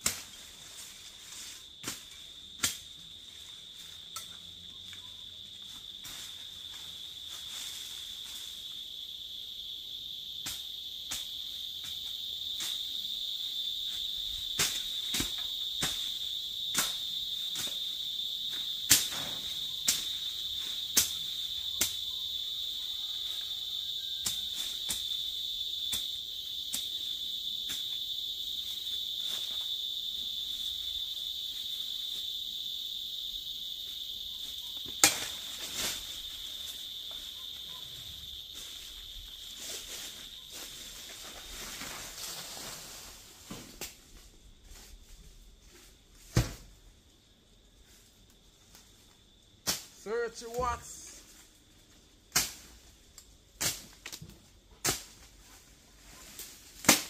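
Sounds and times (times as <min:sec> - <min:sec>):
high insect drone: 0:00.0 - 0:57.0.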